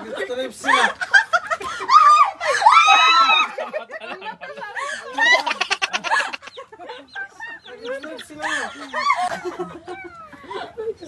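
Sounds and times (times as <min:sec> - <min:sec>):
chicken clucking: 0:05.4 - 0:10.4.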